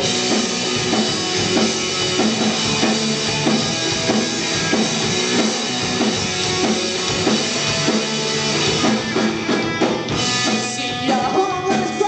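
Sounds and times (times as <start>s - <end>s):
drum kit beat: 0.0s - 12.0s
electric bass: 0.0s - 12.0s
electric guitar: 0.0s - 12.0s.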